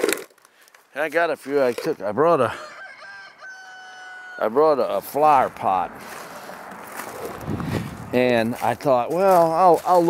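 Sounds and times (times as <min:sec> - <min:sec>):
low wind rumble: 0:04.8 - 0:08.8
wind hiss on microphone: 0:07.3 - 0:08.4.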